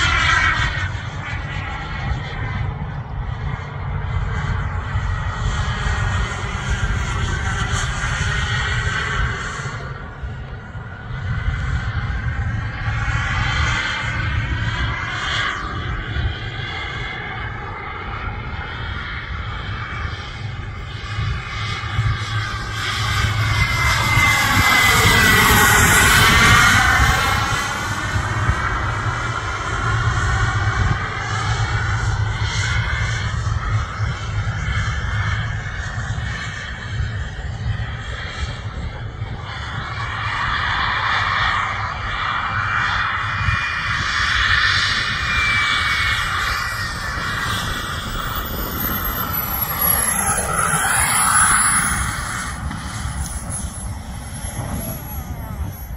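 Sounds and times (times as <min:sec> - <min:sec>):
model jet engine whine: 0:00.0 - 0:55.9.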